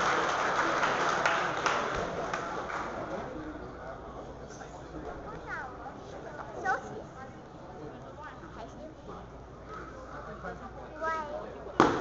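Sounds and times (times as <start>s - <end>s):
audience applause: 0.0s - 3.2s.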